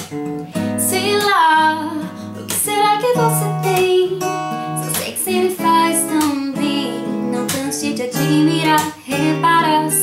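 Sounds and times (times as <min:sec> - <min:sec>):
strummed acoustic guitar: 0:00.0 - 0:10.0
woman singing: 0:00.5 - 0:10.0.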